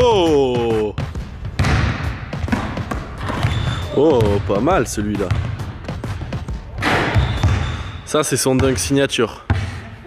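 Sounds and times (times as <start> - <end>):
ball and feet thudding on court: 0.6 - 7.9
ball crashing through hoop: 1.6 - 4.4, 6.8 - 7.7.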